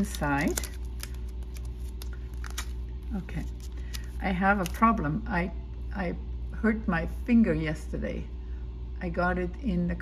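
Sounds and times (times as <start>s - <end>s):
plastic package clicks and rustles: 0.0s - 4.8s
steady low hum: 0.0s - 10.0s.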